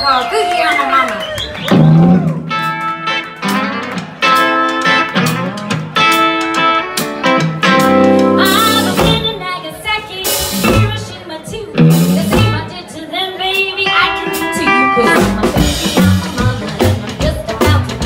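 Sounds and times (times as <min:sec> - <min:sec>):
rockabilly band playing: 0:00.0 - 0:18.0
electric guitar ringing notes: 0:13.9 - 0:15.7.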